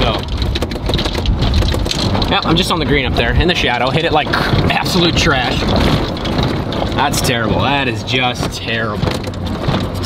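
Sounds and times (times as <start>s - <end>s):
golf cart rumbling: 0.0s - 10.0s
rattling crackling clicks: 0.0s - 10.0s.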